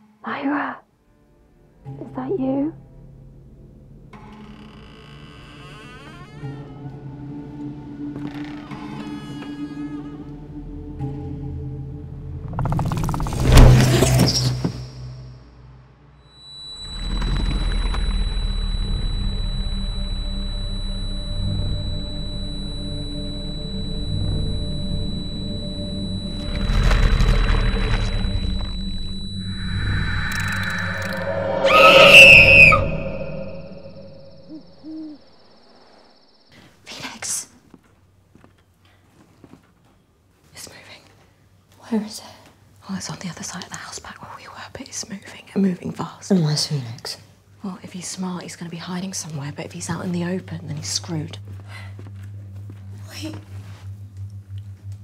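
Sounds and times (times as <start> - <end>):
low droning horror score: 4.6 - 36.3, 49.8 - 55.0
thin high whine: 16.2 - 36.4, 49.8 - 55.0
shrill eerie tones: 16.3 - 36.2
deep rumble: 16.7 - 34.8, 49.9 - 55.0.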